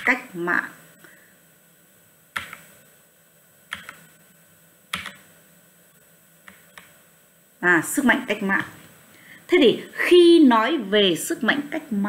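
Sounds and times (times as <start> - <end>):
computer clicks: 2.4 - 2.7, 3.7 - 4.0, 4.9 - 5.2.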